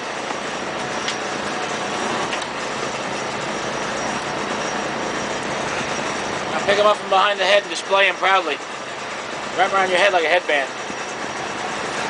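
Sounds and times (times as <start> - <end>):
boat engine running: 0.0 - 12.0.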